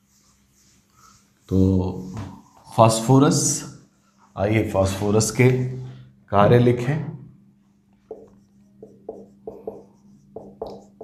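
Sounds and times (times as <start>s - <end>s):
marker pen writing on whiteboard: 0.0s - 3.0s, 7.7s - 11.0s.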